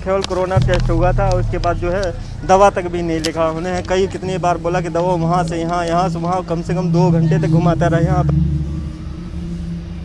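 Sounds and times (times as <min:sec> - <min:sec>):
man's voice: 0:00.0 - 0:08.5
vehicle engine rumbling: 0:00.0 - 0:10.0.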